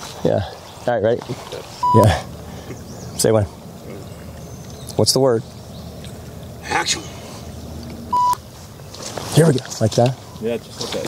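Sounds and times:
short electronic beep: 0:01.8 - 0:02.1, 0:08.1 - 0:08.4.

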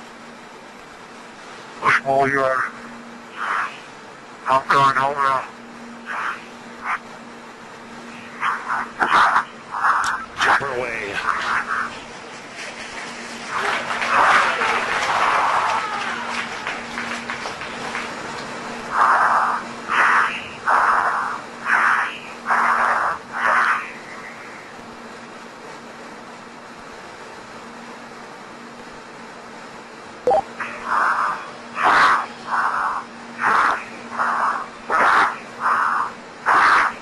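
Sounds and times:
low electrical hum: 0:00.0 - 0:37.0
indistinct voices calling out: 0:13.4 - 0:17.6.

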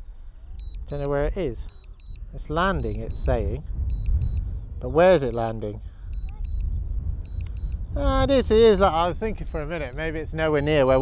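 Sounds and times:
wind rumbling on microphone: 0:00.0 - 0:11.0
remote controller double beeps: 0:00.6 - 0:04.5, 0:06.1 - 0:07.8.

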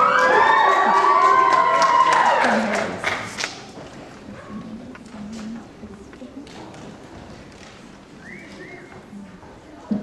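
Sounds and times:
audience cheering and whooping: 0:00.0 - 0:03.0.

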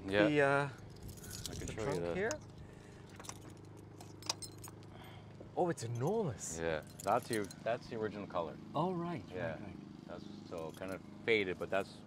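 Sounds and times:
car keys jingling: 0:00.7 - 0:05.1, 0:05.8 - 0:07.7, 0:10.5 - 0:11.1.

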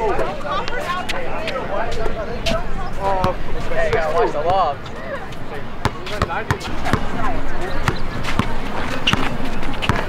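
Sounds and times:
basketball bouncing: 0:05.8 - 0:10.0.

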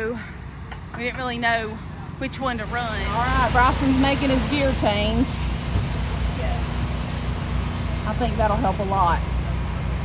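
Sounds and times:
low engine drone: 0:00.0 - 0:10.0.

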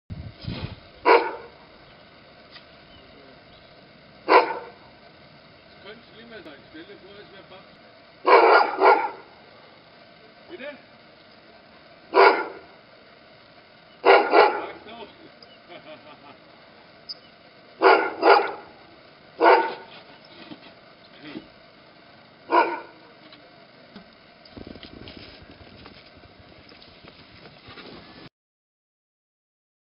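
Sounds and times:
dog barking: 0:01.0 - 0:01.5, 0:04.3 - 0:04.8, 0:08.2 - 0:09.3, 0:12.1 - 0:12.7, 0:14.0 - 0:14.8, 0:17.8 - 0:18.7, 0:19.4 - 0:19.9, 0:22.5 - 0:23.0.

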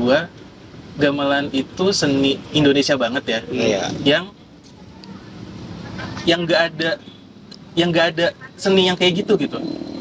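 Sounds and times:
distant road traffic: 0:00.0 - 0:10.0.

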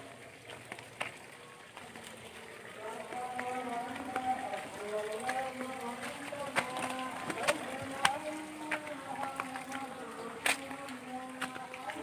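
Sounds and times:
person chanting in held notes: 0:02.2 - 0:12.0.

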